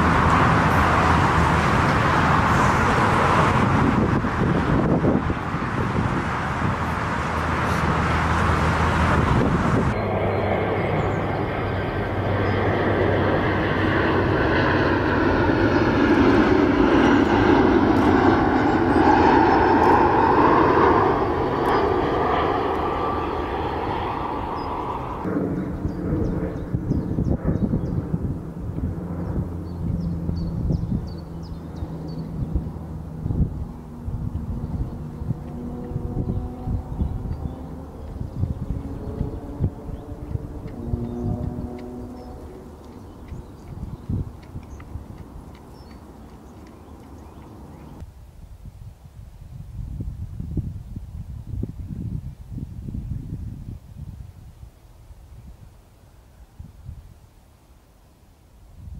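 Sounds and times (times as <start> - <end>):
steady jet drone with crackle: 0.0 - 36.0
distant jet airliner rumble: 0.0 - 48.1.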